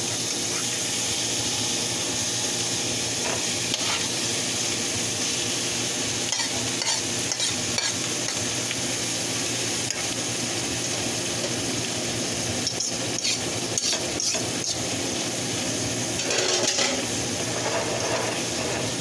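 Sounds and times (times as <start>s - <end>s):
chicken sizzling in a pan: 0.0s - 19.0s
fork scraping a pan: 3.2s - 4.1s, 6.3s - 8.4s, 12.7s - 14.9s, 16.2s - 19.0s.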